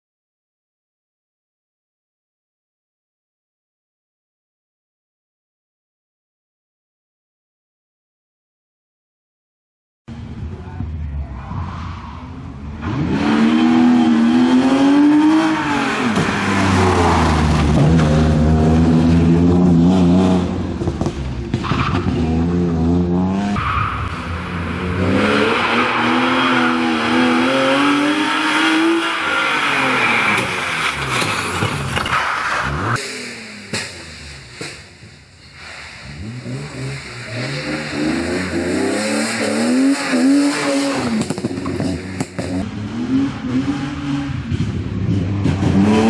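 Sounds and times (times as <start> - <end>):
car engine accelerating: 10.1 - 35.2, 36.0 - 46.0.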